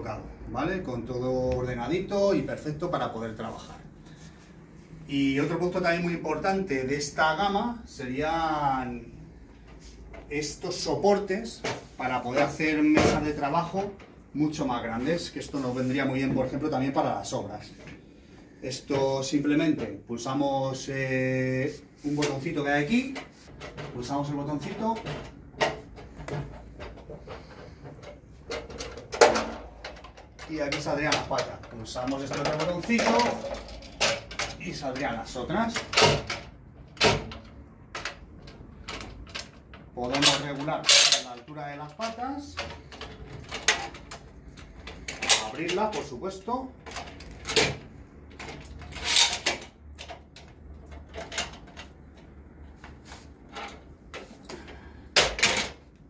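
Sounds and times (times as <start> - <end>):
metal sawhorse clicks and clatter: 38.9 - 41.5.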